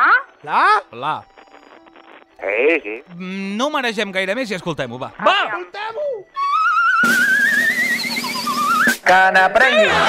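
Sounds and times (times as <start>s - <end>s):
wobbling whistle-like tone: 6.3s - 9.0s.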